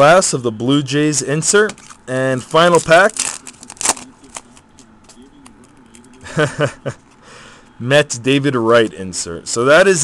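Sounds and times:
wrapper tearing and crinkling: 1.8 - 4.5.

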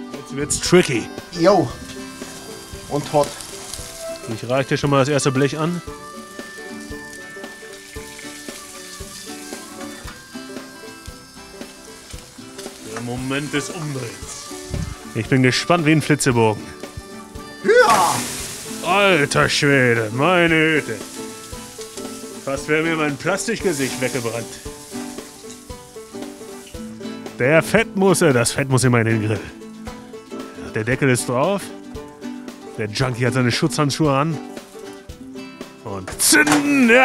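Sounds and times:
background music with steady beat: 0.0 - 37.0
burger patties sizzling: 0.6 - 27.8, 34.4 - 37.0.

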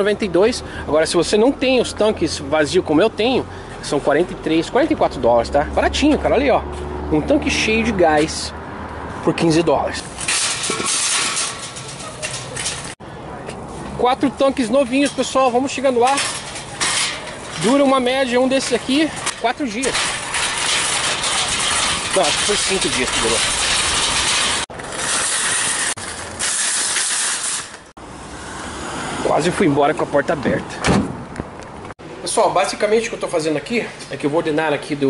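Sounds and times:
loaded cart rattling over concrete: 10.0 - 13.0, 14.2 - 27.9.

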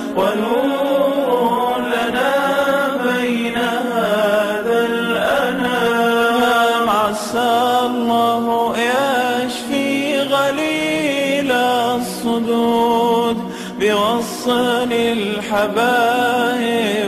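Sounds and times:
voices chanting melody: 0.0 - 12.9.

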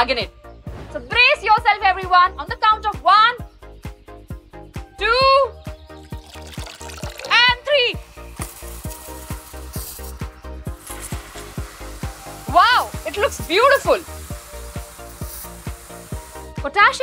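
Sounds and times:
background music with beat: 1.7 - 17.0
foam hissing out of flask: 6.0 - 7.4, 8.0 - 16.7.

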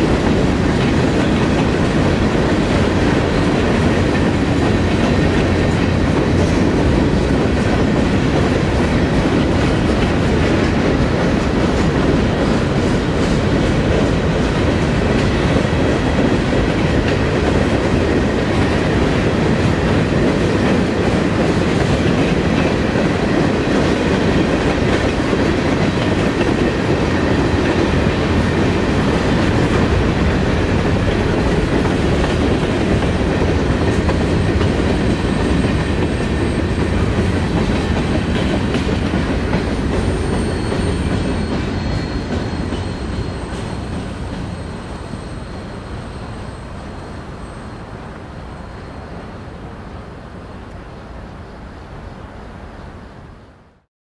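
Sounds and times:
freight train rumbling past: 0.0 - 53.8
faint high whining tones: 39.8 - 53.6.

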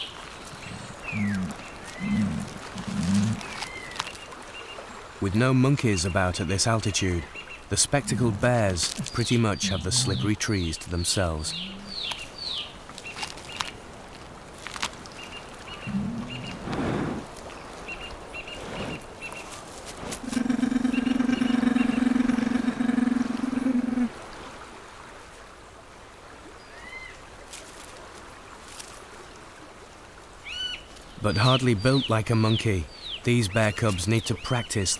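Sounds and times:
bird chirping: 0.0 - 4.8, 5.8 - 13.7, 15.2 - 16.6
low rising call: 11.4 - 12.2.

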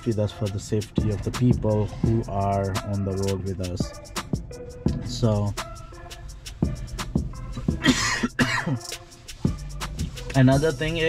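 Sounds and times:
faint background music with beat: 0.0 - 11.0
man coughing: 7.7 - 8.9.

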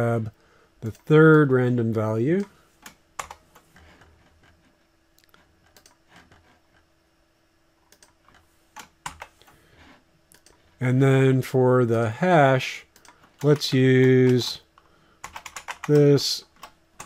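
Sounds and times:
faint steady hum: 0.0 - 17.0
keyboard keystrokes: 15.2 - 16.7.

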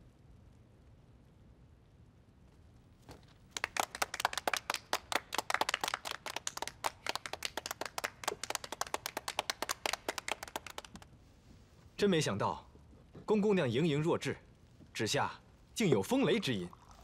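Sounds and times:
people clapping: 3.5 - 11.1.

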